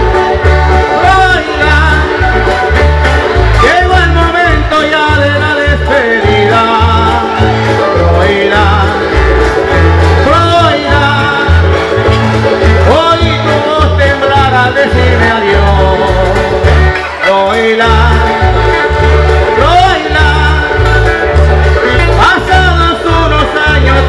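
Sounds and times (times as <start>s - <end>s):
deep bass notes: 0.0s - 24.0s
guitars strumming rhythm: 0.0s - 24.0s.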